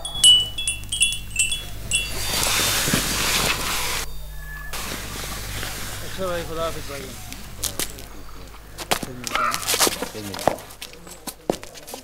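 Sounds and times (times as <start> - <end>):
loud rushing hiss: 0.0 - 4.1, 4.7 - 7.6
high tinkling chimes: 0.0 - 4.8.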